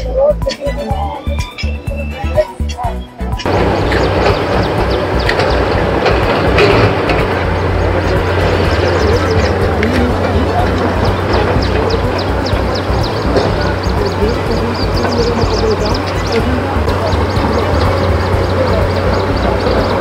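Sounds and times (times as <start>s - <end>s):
constant low rumble: 0.0s - 20.0s
indistinct voices: 0.0s - 20.0s.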